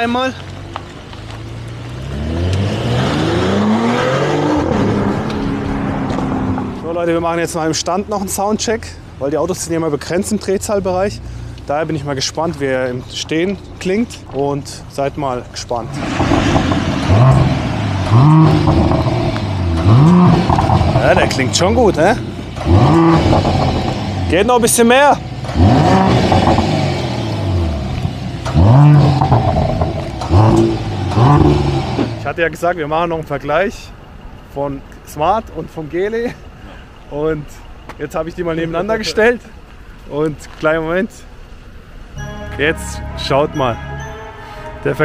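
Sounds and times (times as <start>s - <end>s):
car engine accelerating hard: 1.2s - 7.1s, 15.8s - 32.4s.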